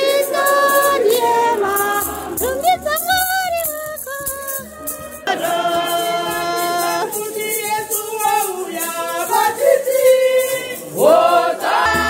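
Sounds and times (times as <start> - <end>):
group singing a hymn: 0.0 - 2.9, 4.4 - 12.0
low steady beat: 11.7 - 12.0.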